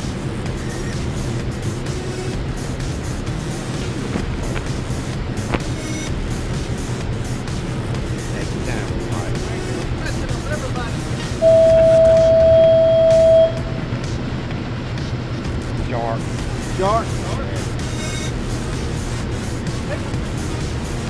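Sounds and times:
outboard motor idling: 0:00.0 - 0:21.0
loud steady beep: 0:11.4 - 0:13.9.

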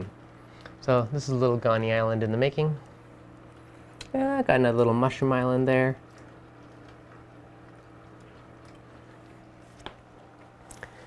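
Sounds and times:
aquarium water and pump noise: 0:00.0 - 0:11.0
low steady hum: 0:00.0 - 0:11.0.

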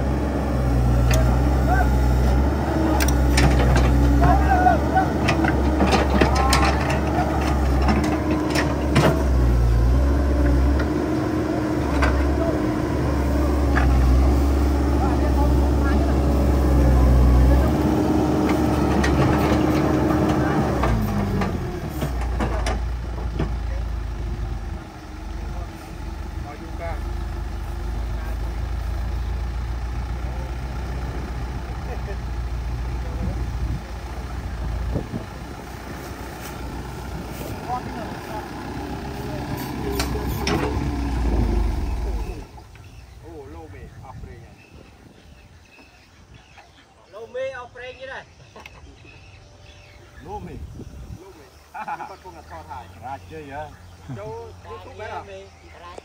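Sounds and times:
excavator diesel engine running: 0:00.0 - 0:46.5.

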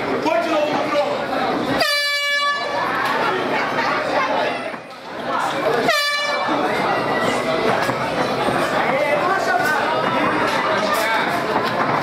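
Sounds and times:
crowd shouting and chatter: 0:00.0 - 0:12.0
horn blast: 0:01.8 - 0:02.8, 0:05.8 - 0:06.6.

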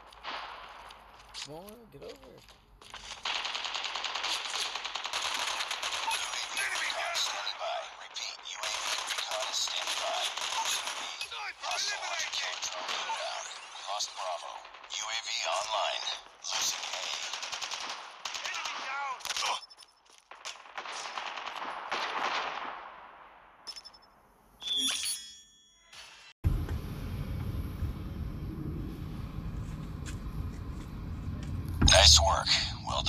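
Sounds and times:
rapid automatic gunfire: 0:02.9 - 0:19.6, 0:20.3 - 0:23.3
steady low rumble: 0:26.4 - 0:33.0.

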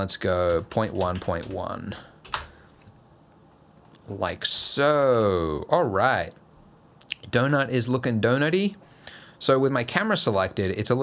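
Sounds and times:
computer keyboard keystrokes: 0:00.4 - 0:02.6.

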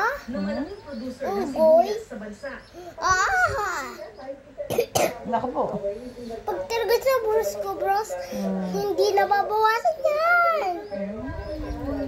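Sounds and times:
boy coughing: 0:04.7 - 0:05.2.

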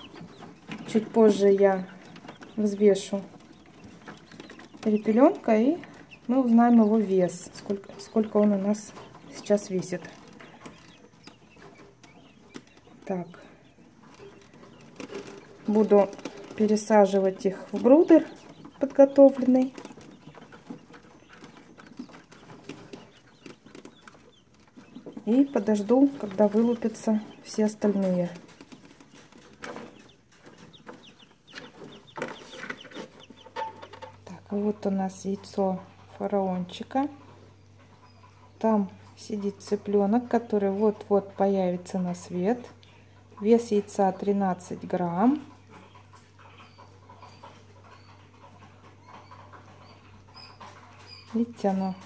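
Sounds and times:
quail chicks peeping: 0:00.0 - 0:52.0.

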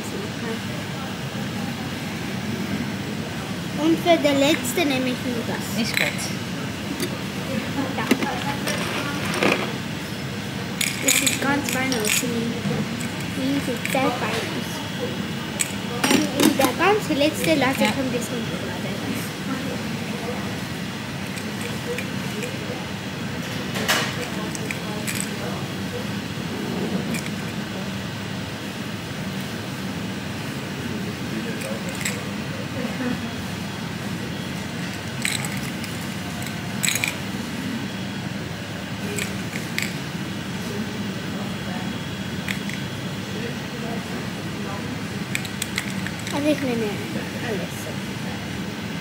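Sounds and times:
room noise: 0:00.0 - 0:49.0
steady low hum: 0:00.0 - 0:49.0.

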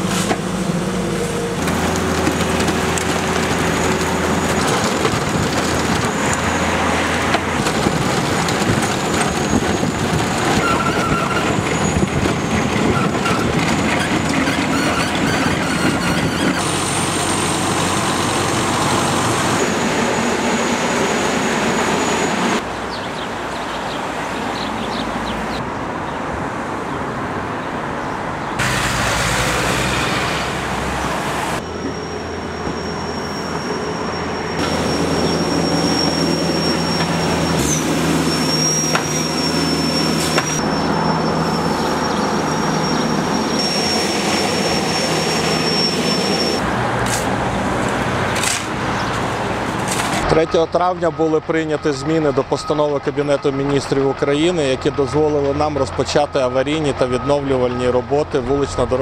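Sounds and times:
milling attachment grinding asphalt: 0:00.0 - 0:19.9, 0:34.5 - 0:47.3
skid-steer loaders running: 0:00.0 - 0:22.7, 0:28.6 - 0:59.0.

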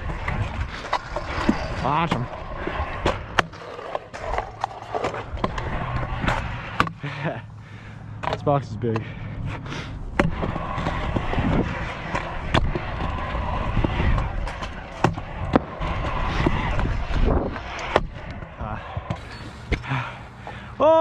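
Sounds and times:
scooter wheels rolling on concrete: 0:00.0 - 0:21.0
scooter clacking on ramps: 0:10.2 - 0:19.3.

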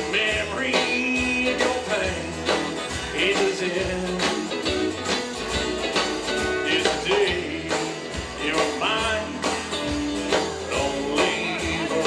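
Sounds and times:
man singing: 0:00.0 - 0:04.9, 0:06.3 - 0:12.0
country band playing: 0:00.0 - 0:12.0.

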